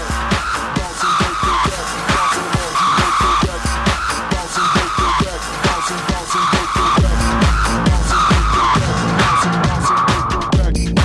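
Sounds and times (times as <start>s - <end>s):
harsh synth sound: 0.0s - 11.0s
kick drum beat: 0.0s - 11.0s
techno over club sound system: 0.0s - 11.0s.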